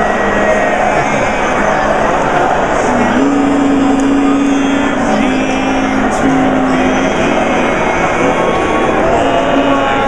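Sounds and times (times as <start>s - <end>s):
crowd chatter: 0.0s - 10.0s
quartet singing a cappella: 0.0s - 10.0s.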